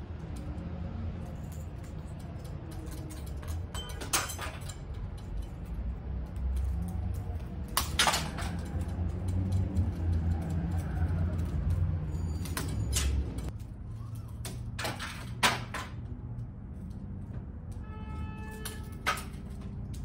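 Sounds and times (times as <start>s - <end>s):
scraping clinks: 0.3s - 10.5s
metal strip and pane clinking: 1.2s - 16.0s, 18.5s - 20.0s.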